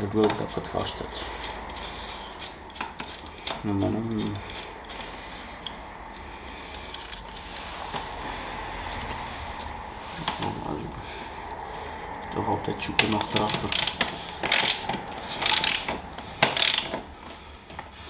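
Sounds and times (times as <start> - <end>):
metallic clicks and scraping: 0.0 - 10.6, 12.9 - 17.9.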